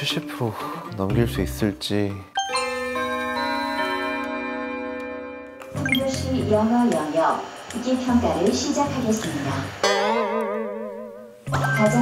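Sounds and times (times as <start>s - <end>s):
electronic chime: 5.8s - 6.2s.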